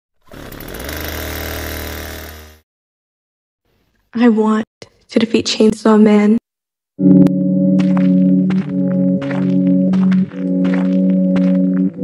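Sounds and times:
chainsaw engine running hard: 0:00.2 - 0:02.6.

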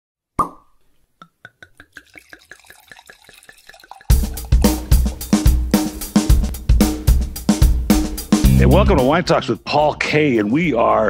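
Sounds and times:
cork popping from bottle: 0:00.4 - 0:06.6
wine glugging from bottle: 0:01.2 - 0:05.6.

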